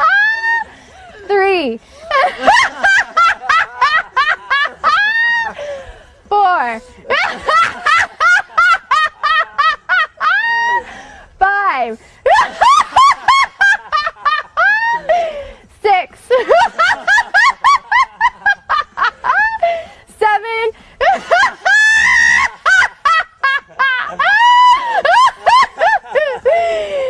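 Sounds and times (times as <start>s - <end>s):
woman laughing uncontrollably: 0.0s - 0.6s, 2.1s - 5.8s, 7.1s - 10.8s, 12.3s - 15.4s, 16.3s - 19.8s, 21.0s - 27.0s.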